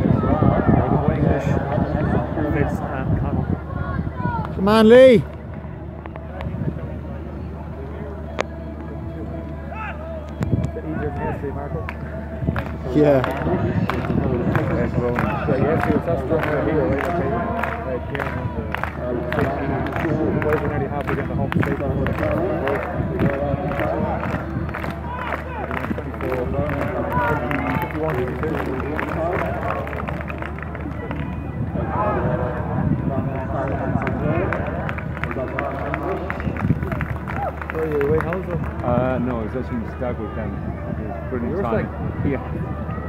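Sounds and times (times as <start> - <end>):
spectators chatting: 0.0 - 43.0
quick handclaps: 11.9 - 31.4.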